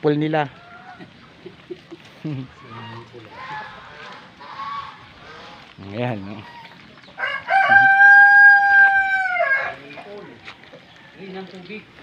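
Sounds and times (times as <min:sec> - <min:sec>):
rooster crowing: 0:07.2 - 0:09.8.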